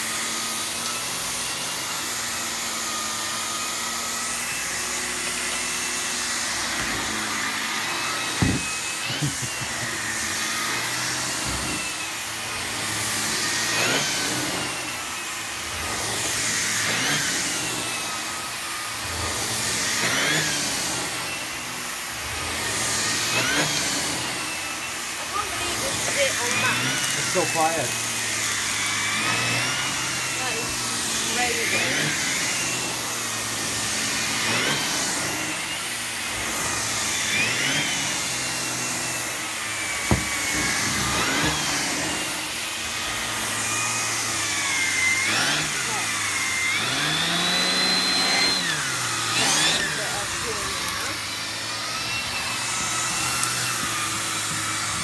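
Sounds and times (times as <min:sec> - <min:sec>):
vacuum cleaner on carpet: 0:00.0 - 0:55.0
single knock: 0:40.1 - 0:40.3.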